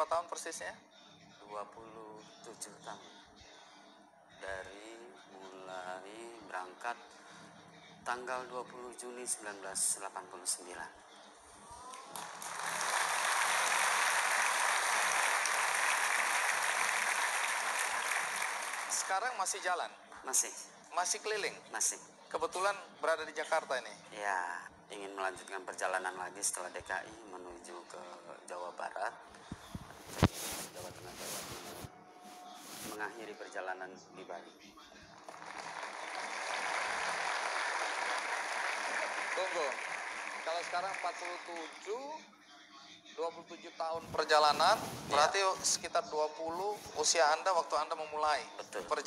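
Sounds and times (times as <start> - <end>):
audience applauding: 12.0 - 19.6, 35.3 - 42.0.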